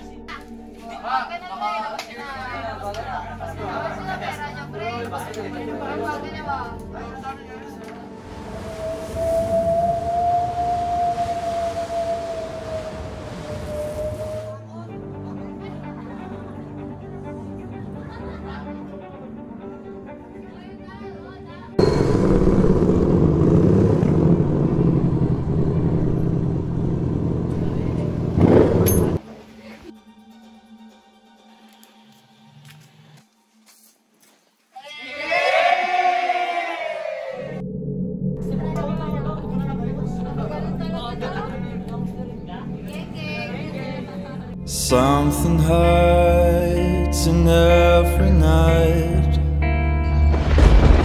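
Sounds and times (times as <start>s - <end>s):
eerie held drone tone: 8.1s - 14.6s, 21.8s - 29.0s, 37.6s - 46.4s
low rumble: 21.8s - 29.2s
group yelling: 34.8s - 37.6s.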